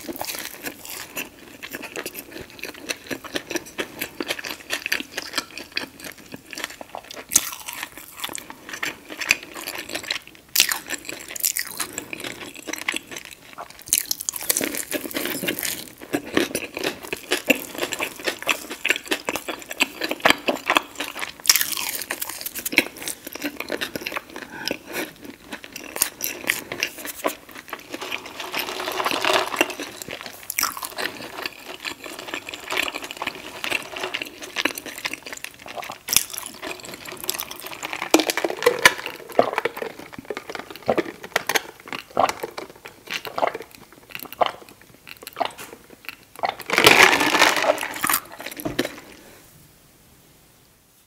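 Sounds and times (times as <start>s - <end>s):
chewing and swallowing: 0.0s - 49.3s.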